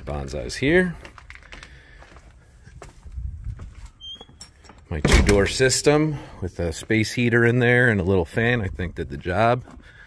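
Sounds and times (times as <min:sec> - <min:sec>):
soft footsteps: 0:01.1 - 0:04.9.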